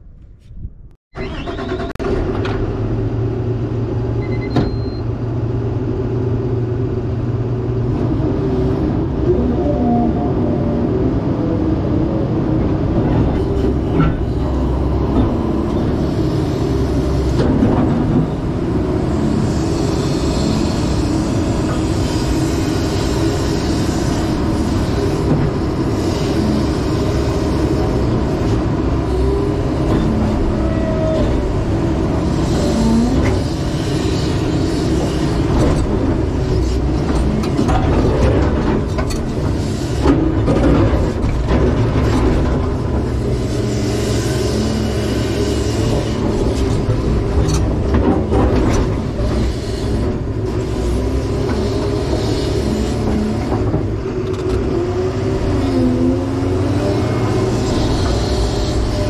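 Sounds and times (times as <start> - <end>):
excavator diesel engine running: 1.1 - 59.0.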